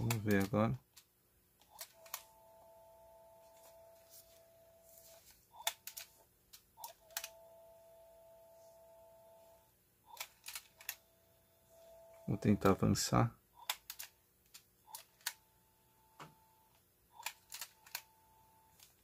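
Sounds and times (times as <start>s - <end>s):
faint steady tone: 7.2s - 9.8s, 10.9s - 13.1s.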